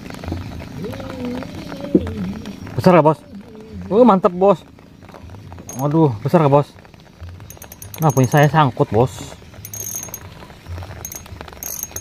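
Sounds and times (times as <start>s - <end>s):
fishing reel ratchet clicking: 7.5s - 8.5s, 9.7s - 10.2s, 11.0s - 12.0s.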